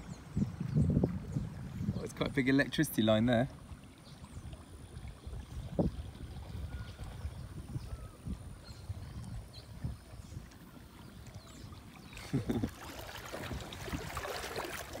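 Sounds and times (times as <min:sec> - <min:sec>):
wind rumble on microphone: 0:00.0 - 0:03.0, 0:04.0 - 0:15.0
water rippling and lapping: 0:00.0 - 0:15.0.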